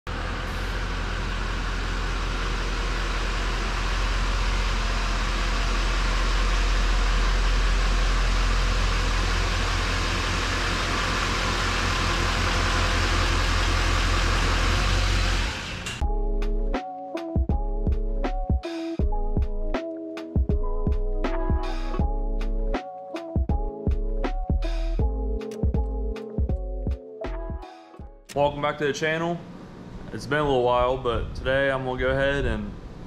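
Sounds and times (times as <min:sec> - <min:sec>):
diesel truck engine droning: 0:00.1 - 0:16.0.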